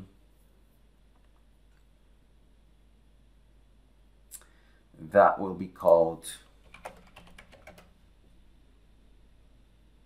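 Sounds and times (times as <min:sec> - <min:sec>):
computer keyboard keystrokes: 0:06.6 - 0:08.0.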